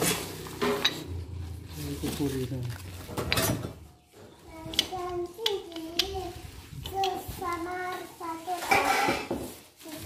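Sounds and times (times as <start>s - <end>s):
bubble wrap and cardboard rustling: 0.0s - 3.2s, 4.5s - 10.0s.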